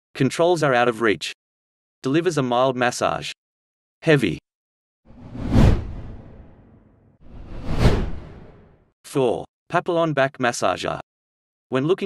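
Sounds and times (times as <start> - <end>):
whoosh transitions: 5.1 - 8.7.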